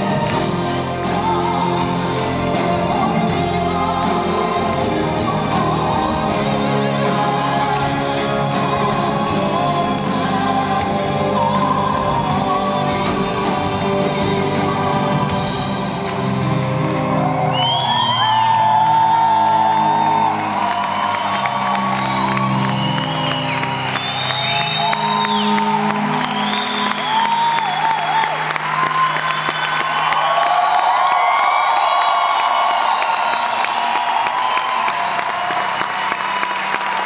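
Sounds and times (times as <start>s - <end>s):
band playing sustained chords: 0.0s - 29.3s
crowd cheering and whooping: 0.0s - 37.0s.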